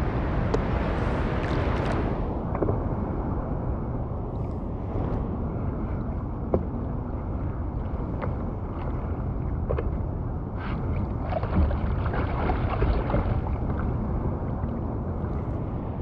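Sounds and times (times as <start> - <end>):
wind rumble on microphone: 0.0 - 16.0
water lapping against surfboard: 7.7 - 15.6
small water splashes: 10.6 - 15.4.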